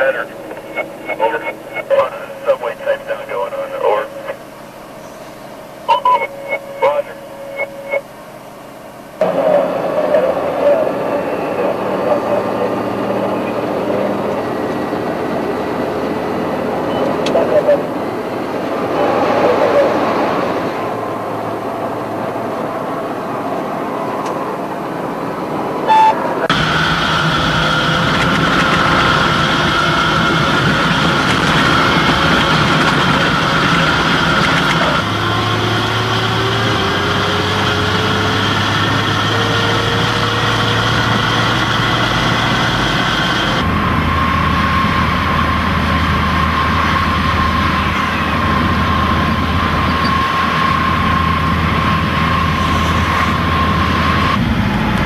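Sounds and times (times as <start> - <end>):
armoured vehicle engine droning: 0.0 - 55.0
high whine: 0.0 - 55.0.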